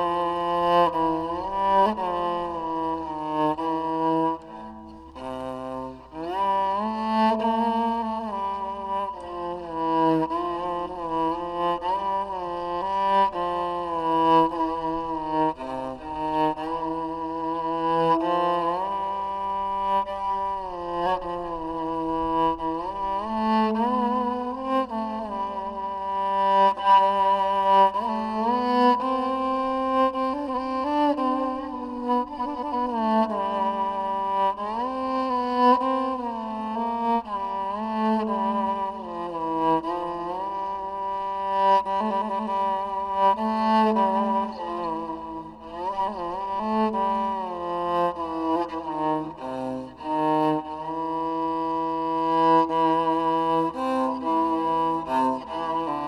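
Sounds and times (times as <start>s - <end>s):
bowed fiddle melody: 0.0s - 56.0s.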